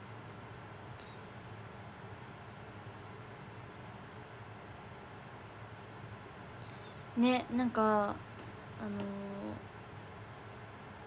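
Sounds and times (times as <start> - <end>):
faint low room hum: 0.0 - 11.0
woman's drawn-out hesitation sound: 8.8 - 9.6.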